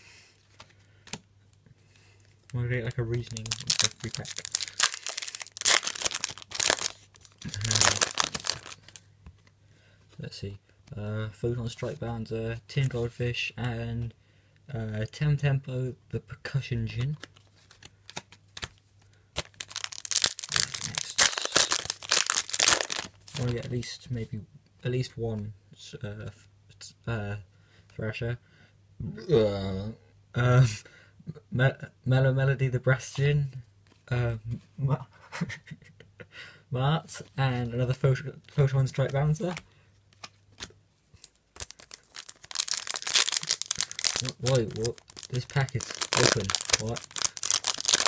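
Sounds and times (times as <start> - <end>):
foil wrapper tearing and crinkling: 3.2 - 9.0, 19.4 - 23.7, 41.2 - 48.0.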